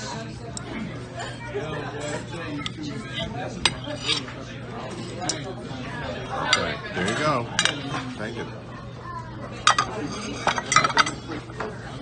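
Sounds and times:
background chatter: 0.0 - 12.0
cutlery clinking on plates: 3.6 - 5.5, 6.4 - 8.0, 9.6 - 11.7.

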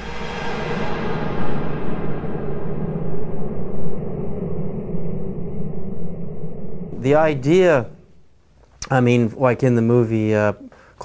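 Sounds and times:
low rumbling drone: 0.0 - 8.6.

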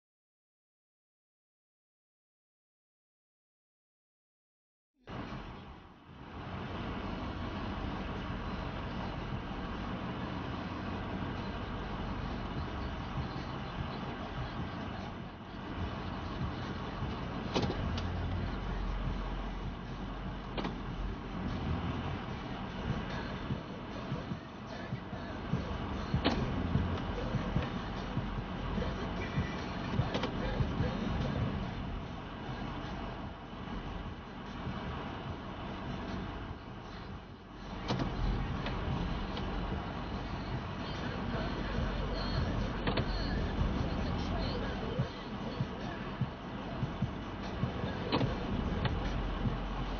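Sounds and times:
pickup engine and road rumble: 5.0 - 49.9.

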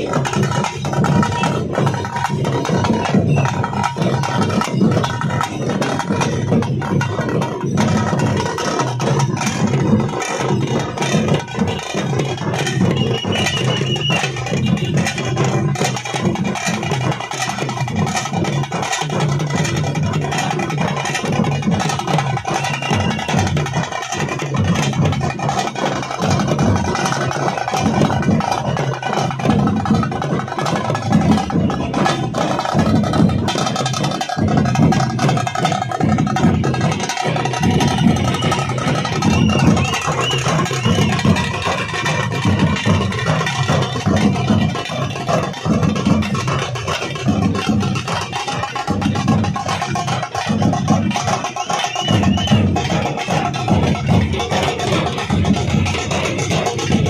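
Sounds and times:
drums beating steadily: 0.0 - 57.0.

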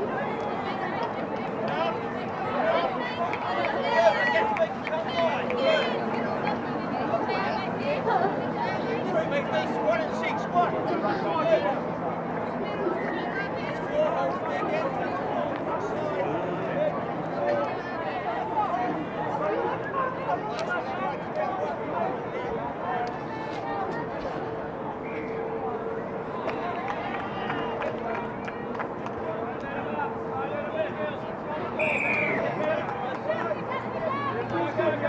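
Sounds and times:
many voices chatting and calling: 0.0 - 35.0.

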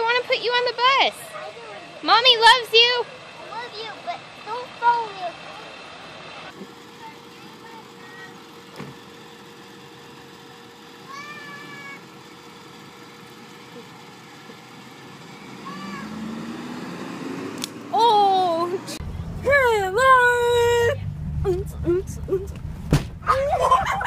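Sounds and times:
bus engine: 0.0 - 24.0
toddler calling: 11.1 - 12.0, 15.6 - 16.1.

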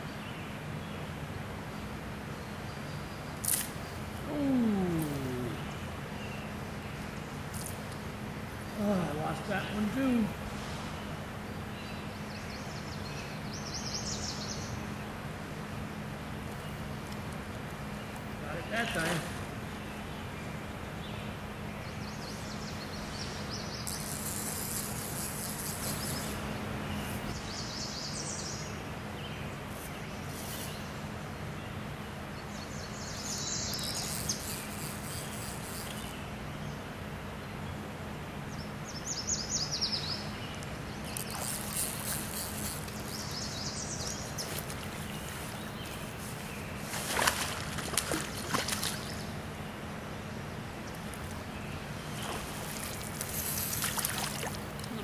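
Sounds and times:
songbirds singing: 0.0 - 55.0
stream water rushing: 51.9 - 55.0.

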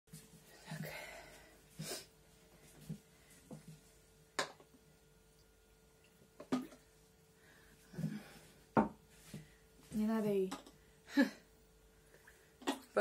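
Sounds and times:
faint steady hum: 0.1 - 13.0.

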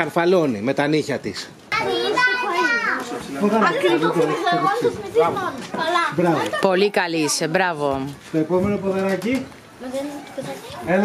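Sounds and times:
child and adult talking: 0.0 - 11.0
child's high-pitched voice: 1.7 - 3.2, 4.0 - 6.2, 9.8 - 10.9.

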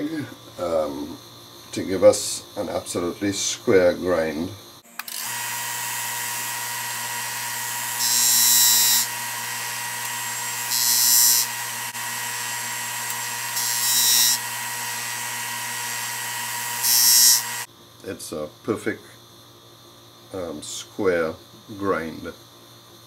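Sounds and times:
disc sander motor hum: 5.0 - 17.7
wood grinding on sander disc: 5.1 - 17.7.

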